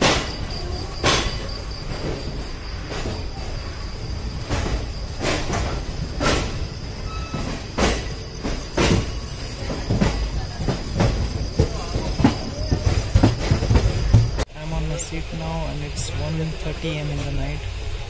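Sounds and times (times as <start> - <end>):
train clunks and knocks: 0.0 - 18.0
train rumble: 0.0 - 18.0
background voices: 9.4 - 18.0.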